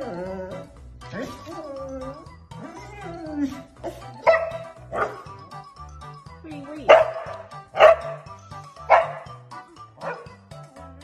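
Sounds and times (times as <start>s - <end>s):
background music with steady beat: 0.0s - 11.0s
dog barking: 4.2s - 5.3s, 6.9s - 8.3s, 8.9s - 9.3s, 10.0s - 10.3s.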